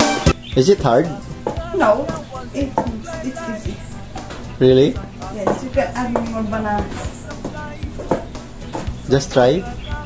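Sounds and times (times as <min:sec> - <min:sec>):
background music: 0:00.0 - 0:10.0
pestle pounding in wooden mortar: 0:07.5 - 0:09.0.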